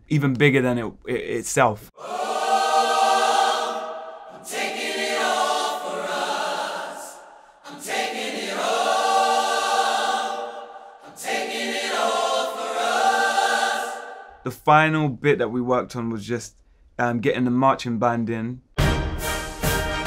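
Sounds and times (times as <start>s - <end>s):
choir singing long chords: 2.0s - 14.4s.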